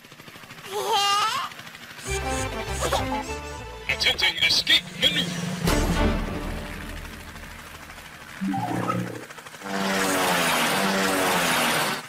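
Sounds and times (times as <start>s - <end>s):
background music: 2.0s - 9.2s
low rumble: 4.5s - 9.3s.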